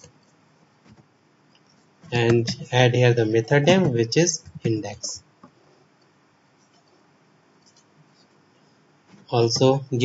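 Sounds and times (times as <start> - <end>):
faint keyboard clicks: 7.6 - 7.9.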